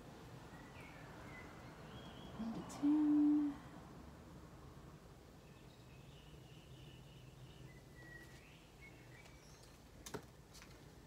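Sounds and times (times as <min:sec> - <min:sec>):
faint low background noise: 0:00.0 - 0:11.0
person humming: 0:02.4 - 0:03.7.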